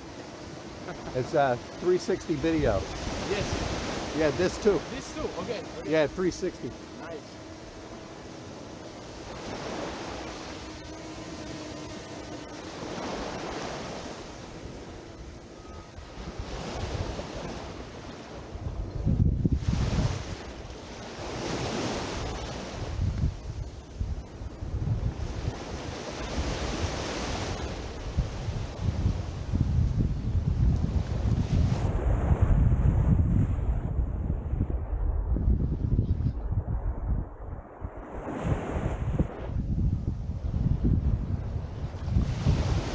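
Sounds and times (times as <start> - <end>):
small waves washing onto beach: 0.0 - 33.9, 37.9 - 42.9
wind buffeting microphone: 0.0 - 42.9.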